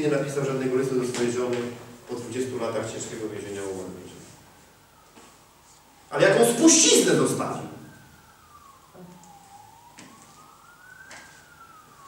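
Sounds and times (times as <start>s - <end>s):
faint siren wailing: 0.0s - 12.0s.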